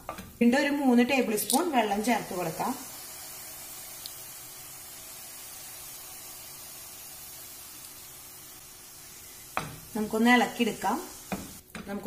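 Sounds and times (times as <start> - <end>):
noodles sizzling in a pan: 0.0 - 12.0.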